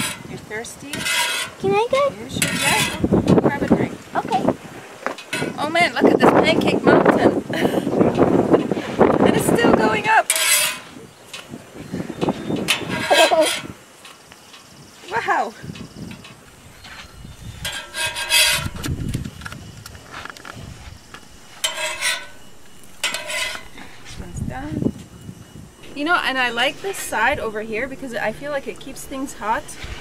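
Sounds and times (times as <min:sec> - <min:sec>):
metal spatula scraping griddle: 0:00.0 - 0:00.3, 0:00.9 - 0:01.7, 0:02.3 - 0:03.1, 0:10.3 - 0:11.0, 0:12.7 - 0:13.7, 0:16.5 - 0:19.2, 0:21.1 - 0:24.3, 0:25.8 - 0:30.0.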